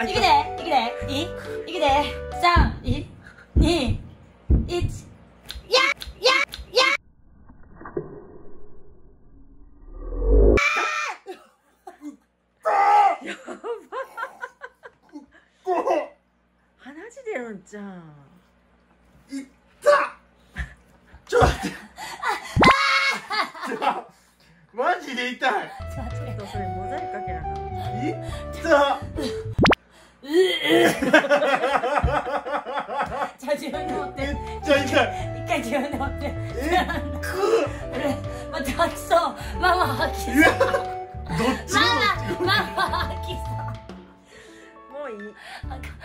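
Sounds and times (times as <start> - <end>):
people laughing: 30.6 - 33.3, 36.5 - 38.2, 39.6 - 43.8.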